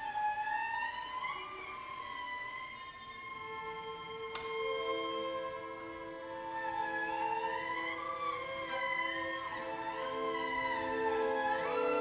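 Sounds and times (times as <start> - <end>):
string orchestra playing: 0.0 - 12.0.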